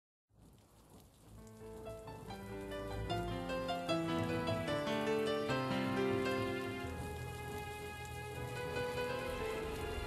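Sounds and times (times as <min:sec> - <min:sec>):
held music notes: 0:01.4 - 0:10.0
hiss-like wash: 0:03.9 - 0:10.0.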